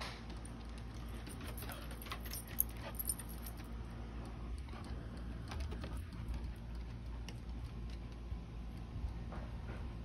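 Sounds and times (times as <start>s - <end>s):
dog collar tags jingling: 0.4s - 3.8s.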